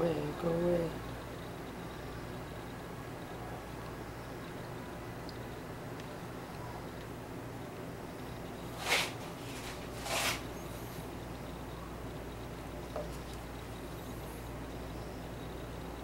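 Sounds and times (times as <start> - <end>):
steady low hum: 0.0 - 16.0
scratchy rustles of seashells: 8.8 - 10.5.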